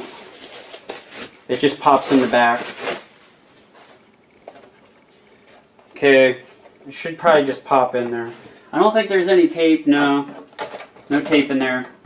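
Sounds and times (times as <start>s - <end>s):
plastic handling noise: 0.0s - 12.0s.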